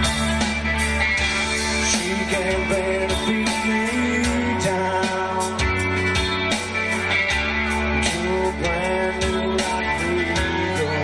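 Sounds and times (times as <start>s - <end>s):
rock band playing: 0.0s - 11.0s
steady drum beat: 0.0s - 11.0s.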